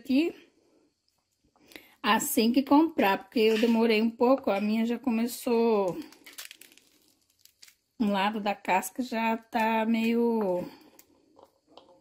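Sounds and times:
pomegranate seeds crackling: 0:02.9 - 0:11.9.

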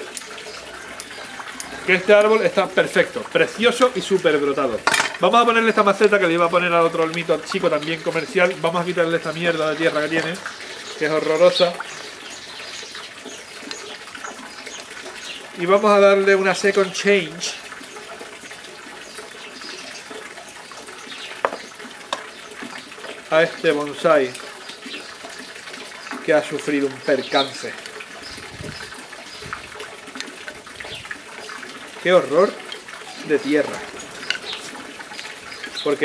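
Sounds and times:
running water: 0:00.0 - 0:36.0.

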